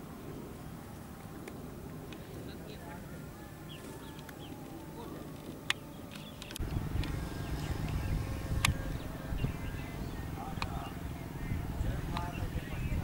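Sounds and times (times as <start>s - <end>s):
sharp clicks: 5.6s - 8.9s
wind buffeting microphone: 6.3s - 13.0s.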